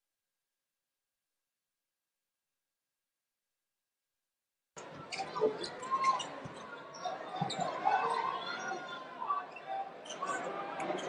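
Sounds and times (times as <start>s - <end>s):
arena crowd noise: 4.8s - 11.0s.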